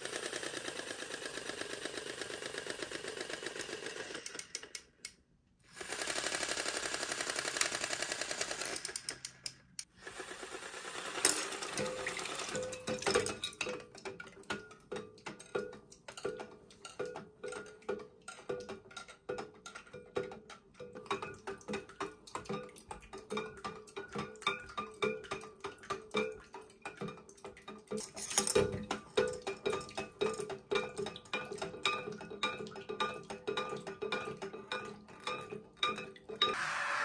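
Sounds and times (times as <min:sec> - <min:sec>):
regular clicking of paddling toy: 0:00.0 - 0:05.2, 0:05.8 - 0:36.6
clockwork mechanism whirring: 0:00.0 - 0:12.7, 0:36.4 - 0:37.0.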